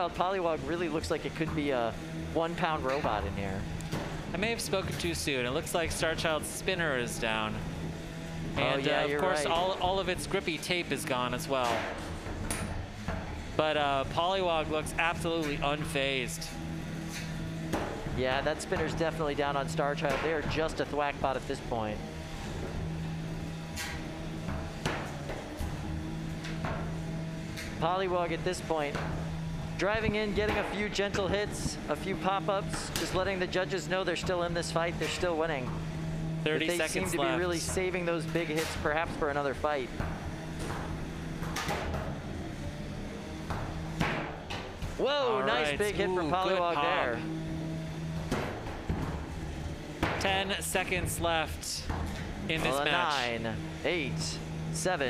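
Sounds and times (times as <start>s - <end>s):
electric motor hum: 0.0s - 51.4s.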